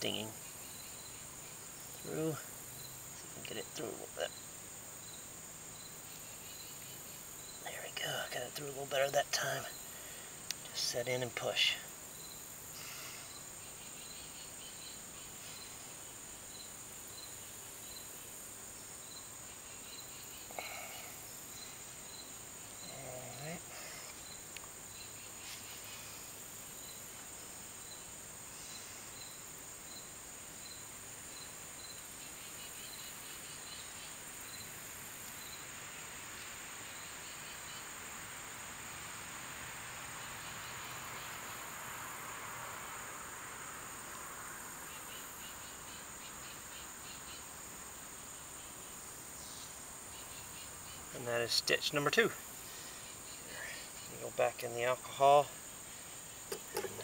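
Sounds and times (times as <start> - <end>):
insects chirping: 0.0 - 57.0
steady high-pitched insect buzz: 0.0 - 57.0.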